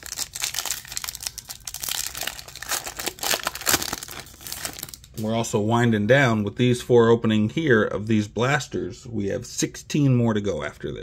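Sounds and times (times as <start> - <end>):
wrapper tearing and crinkling: 0.0 - 5.2.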